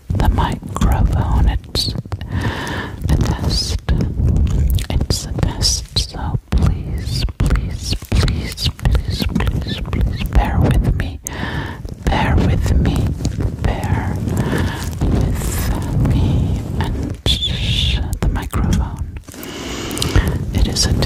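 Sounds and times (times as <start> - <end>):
hands rubbing on microphone: 0.0 - 21.0.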